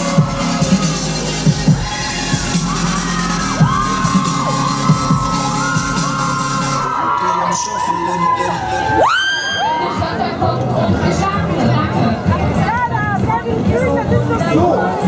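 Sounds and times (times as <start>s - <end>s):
live pop band playing: 0.0s - 6.9s
fans screaming and cheering: 0.0s - 12.9s.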